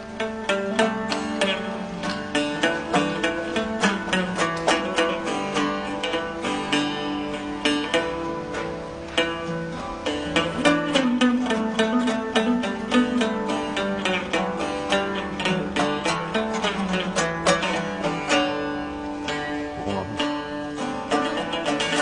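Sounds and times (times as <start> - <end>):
plucked lute melody: 0.0 - 22.0.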